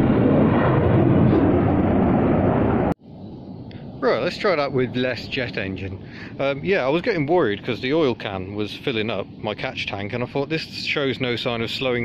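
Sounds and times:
jet aircraft flying overhead: 0:00.0 - 0:12.0.

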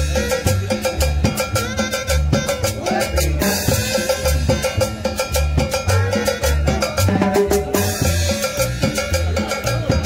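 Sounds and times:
bass line: 0:00.0 - 0:10.0
drum strikes: 0:00.0 - 0:10.0
latin dance band playing: 0:00.0 - 0:10.0.

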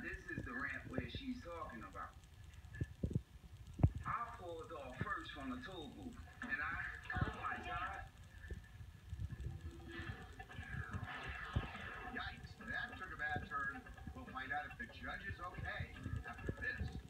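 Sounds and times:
television voices and commotion: 0:00.0 - 0:17.0.

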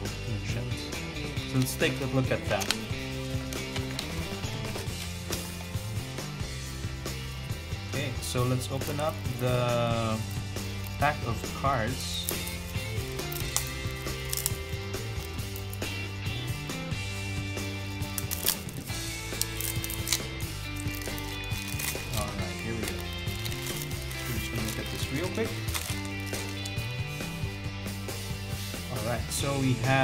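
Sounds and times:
background music with held notes: 0:00.0 - 0:30.0
plastic wrap crinkling: 0:01.5 - 0:05.1, 0:12.0 - 0:16.0, 0:17.8 - 0:27.1.

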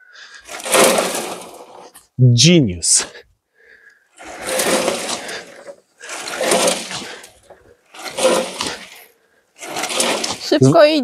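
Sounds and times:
soil rushing across a sieve: 0:00.4 - 0:02.0, 0:04.2 - 0:10.6.

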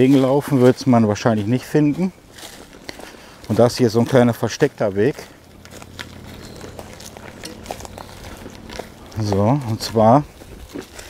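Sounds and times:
footsteps on leaves and wood chips: 0:00.0 - 0:11.0.

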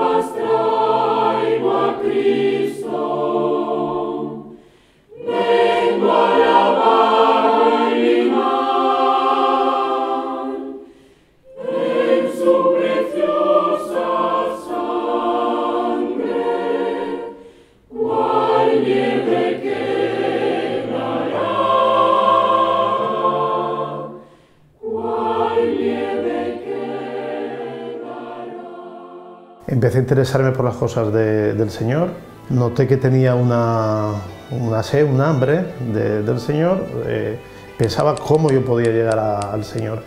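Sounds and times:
mixed choir singing: 0:00.0 - 0:29.8.

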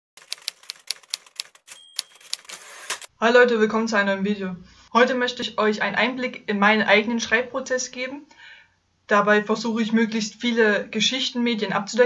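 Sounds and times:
typewriter keys clicking: 0:00.2 - 0:03.1
carriage return bell ding: 0:01.7 - 0:02.4.

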